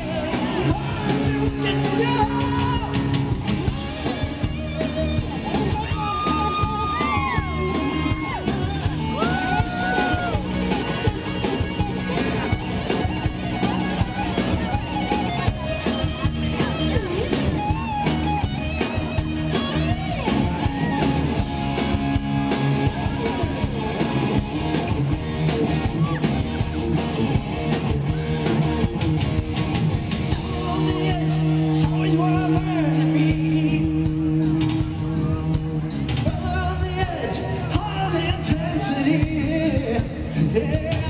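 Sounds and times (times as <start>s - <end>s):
electric guitar bending notes: 0.0s - 36.9s
live rock band playing: 0.0s - 41.0s.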